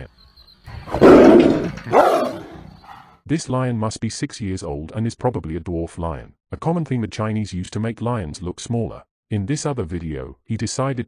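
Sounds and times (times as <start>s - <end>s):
lion snarling and roaring: 0.7s - 3.1s.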